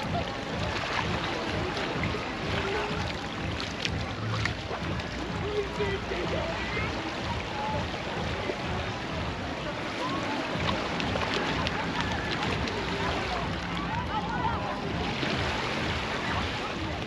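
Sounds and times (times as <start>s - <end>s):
steady wash of beach noise: 0.0s - 17.0s.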